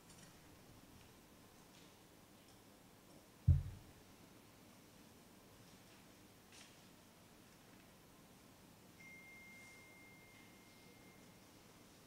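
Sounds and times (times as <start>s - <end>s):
faint high ringing tone: 8.9s - 12.0s.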